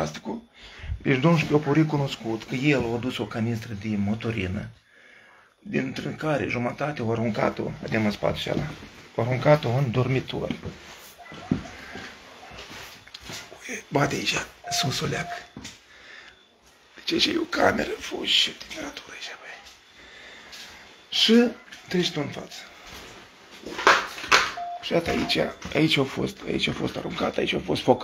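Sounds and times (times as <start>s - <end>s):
man speaking: 0.0s - 4.8s, 5.6s - 10.7s, 12.5s - 15.6s, 17.0s - 19.7s, 21.1s - 22.8s, 24.6s - 28.0s
room noise: 0.0s - 28.0s
shuffling movement: 0.8s - 4.0s, 7.2s - 15.8s, 16.6s - 26.2s.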